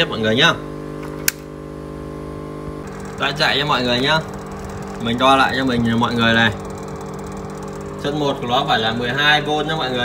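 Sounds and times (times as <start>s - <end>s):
electrical hum: 0.0s - 10.0s
sharp click: 1.0s - 1.5s.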